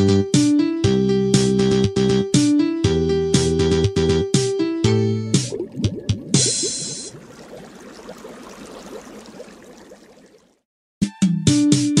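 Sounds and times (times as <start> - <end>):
water bubbling: 5.3 - 10.6.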